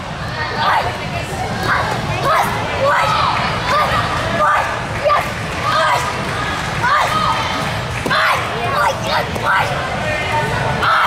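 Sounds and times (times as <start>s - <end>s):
crowd murmur: 0.0s - 11.0s.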